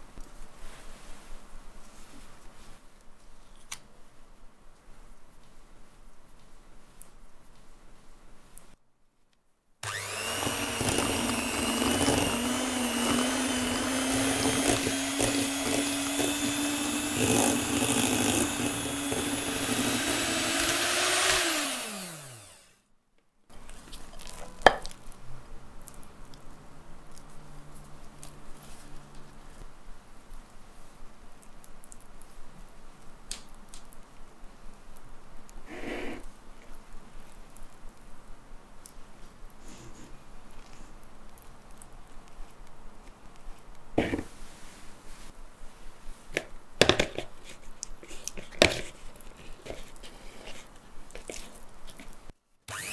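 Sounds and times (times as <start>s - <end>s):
spatula scraping: 9.8s - 22.5s, 35.7s - 36.3s, 46.9s - 52.9s
electric hand mixer beating: 9.8s - 22.7s.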